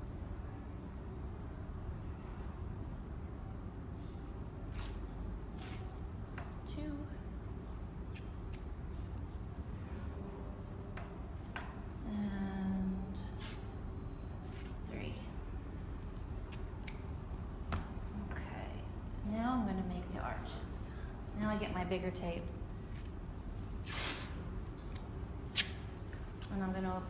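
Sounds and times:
steady low hum: 0:00.0 - 0:27.0.

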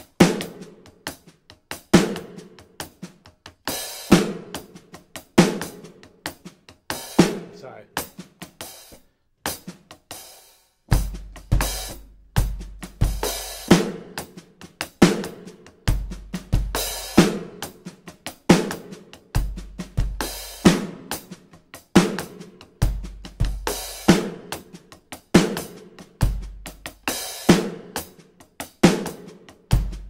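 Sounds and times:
electronic drum kit funk groove: 0:00.0 - 0:30.0.

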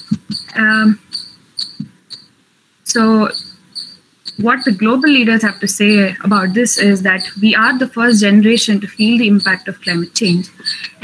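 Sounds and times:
short high-pitched chirps: 0:00.0 - 0:02.3, 0:03.3 - 0:07.4.

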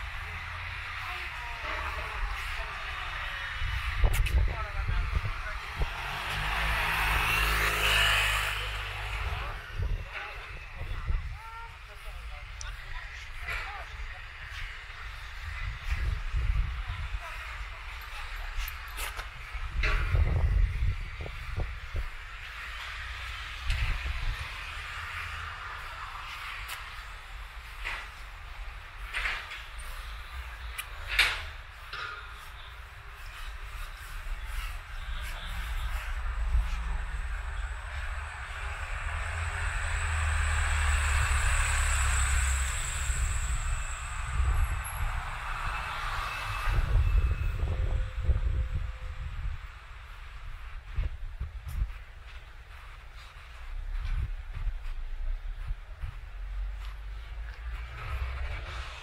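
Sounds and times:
street ambience hiss: 0:00.0 - 0:59.0
car driving past: 0:05.6 - 0:09.7, 0:35.7 - 0:47.7.

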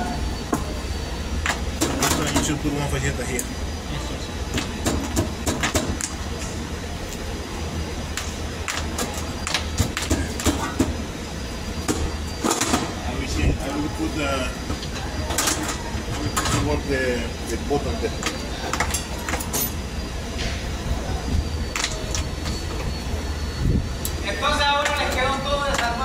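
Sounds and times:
faint high whine: 0:00.0 - 0:26.0
low mechanical rumble: 0:00.0 - 0:26.0
steady low hum: 0:00.0 - 0:26.0.

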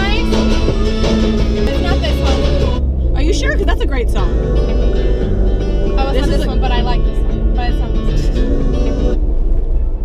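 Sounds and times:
song with vocals on car stereo: 0:00.0 - 0:09.8
car cabin rumble: 0:00.0 - 0:10.0.

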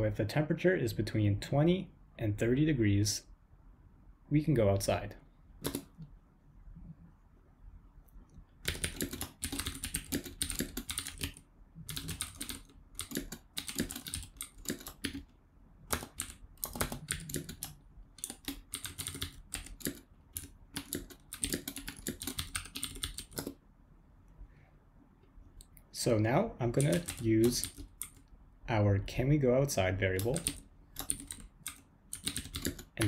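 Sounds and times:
typing on computer keyboard: 0:05.6 - 0:06.1, 0:08.6 - 0:15.3, 0:15.9 - 0:23.6, 0:26.7 - 0:28.3, 0:30.2 - 0:33.0.

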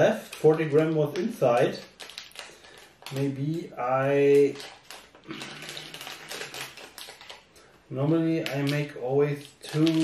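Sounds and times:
packet crinkling in fingers: 0:00.0 - 0:10.0.

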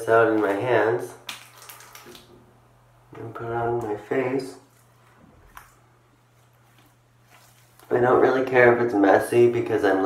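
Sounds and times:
wet hands rubbing jelly: 0:04.6 - 0:08.0.

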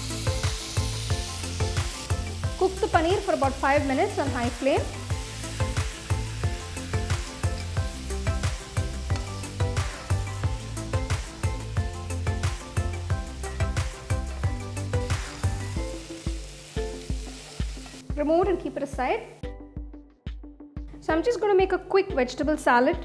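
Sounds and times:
food sizzling in a pan: 0:00.0 - 0:19.4
background music: 0:00.0 - 0:23.0.

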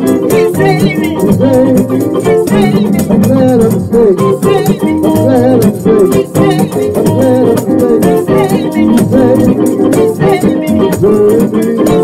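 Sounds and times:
held instrumental tones: 0:00.0 - 0:12.0
person singing: 0:00.0 - 0:12.0
tambourine beaten by hand: 0:00.0 - 0:12.0.

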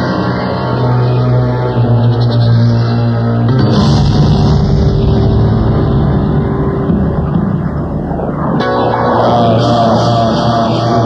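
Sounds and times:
loud low rumble: 0:03.2 - 0:11.0.

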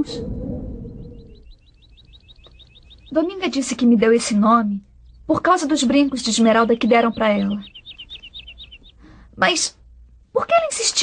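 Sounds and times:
bird trilling: 0:00.6 - 0:09.8.

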